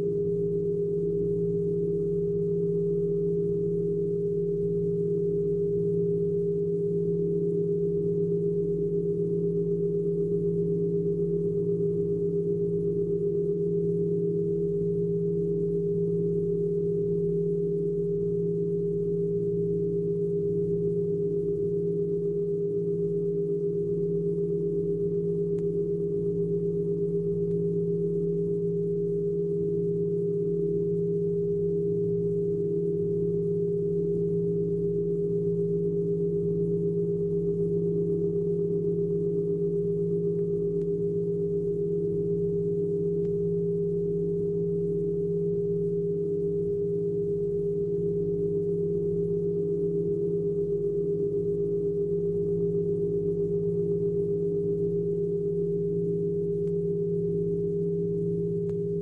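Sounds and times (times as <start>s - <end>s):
faint low rumble: 0.0s - 59.0s.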